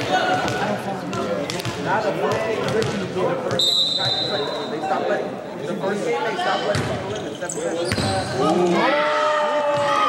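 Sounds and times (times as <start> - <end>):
crowd chatter: 0.0 - 10.0
referee's whistle: 3.5 - 4.8.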